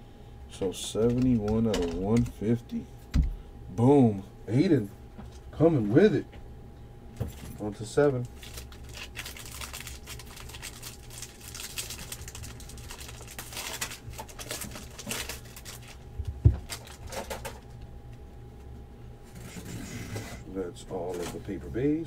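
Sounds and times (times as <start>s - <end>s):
wrapper crinkling and tearing: 8.2s - 16.0s, 16.6s - 17.7s.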